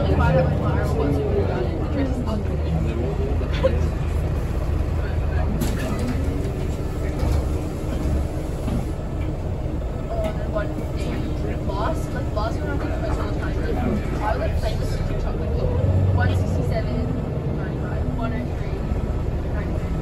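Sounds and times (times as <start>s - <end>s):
bus diesel engine rumble: 0.0s - 20.0s.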